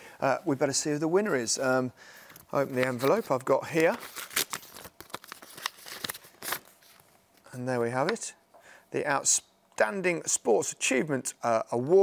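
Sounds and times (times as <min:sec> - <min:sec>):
paper envelope tearing: 0:02.8 - 0:06.8.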